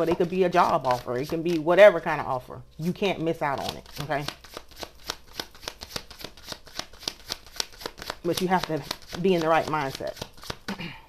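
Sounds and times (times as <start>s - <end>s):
cards being shuffled: 0.0s - 1.8s, 3.5s - 10.7s.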